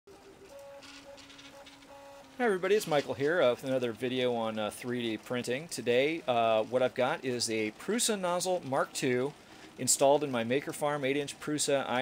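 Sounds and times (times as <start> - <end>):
stepper motor whine: 0.2 - 2.6.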